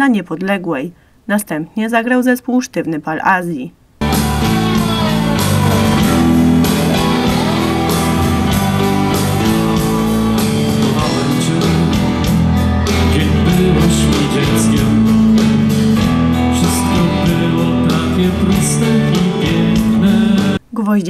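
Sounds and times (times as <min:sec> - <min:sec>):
drum kit beat: 0:04.0 - 0:20.6
electric bass: 0:04.0 - 0:20.6
keyboards: 0:04.0 - 0:20.6.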